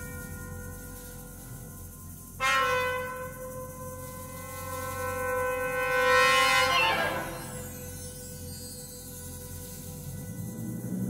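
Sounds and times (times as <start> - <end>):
wind band sustained chord: 0.0 - 11.0.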